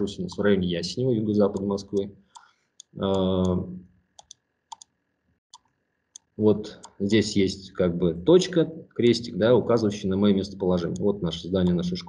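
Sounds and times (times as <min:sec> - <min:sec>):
computer mouse clicks: 0:00.3 - 0:00.5, 0:02.4 - 0:03.6, 0:04.2 - 0:04.9, 0:05.5 - 0:07.0
man saying uh: 0:03.0 - 0:03.8, 0:06.4 - 0:12.0.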